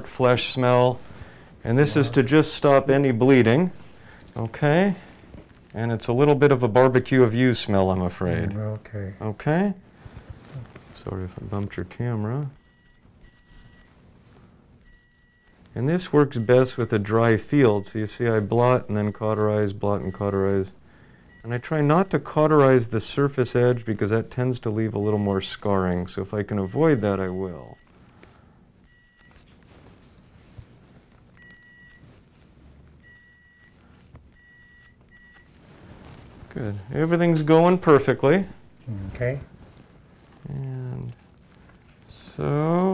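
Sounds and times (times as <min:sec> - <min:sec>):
high beeps: 0:20.0 - 0:20.5.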